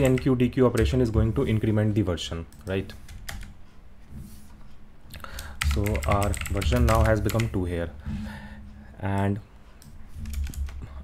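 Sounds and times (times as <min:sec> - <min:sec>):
computer keyboard typing: 0:00.0 - 0:01.2, 0:02.5 - 0:03.6, 0:05.2 - 0:07.7, 0:09.2 - 0:10.9.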